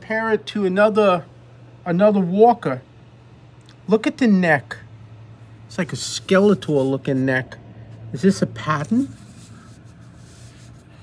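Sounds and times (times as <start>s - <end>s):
coin rubbing on cloth mat: 5.9s - 7.5s, 8.6s - 11.0s.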